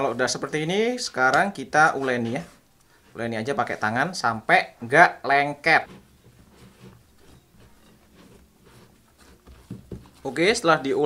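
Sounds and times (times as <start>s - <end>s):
dough kneaded by hand: 5.6s - 11.0s.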